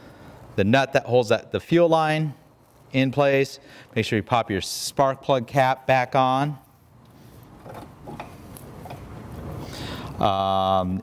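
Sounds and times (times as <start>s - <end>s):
faint clicks and rustles: 2.5s - 3.1s, 6.5s - 9.8s.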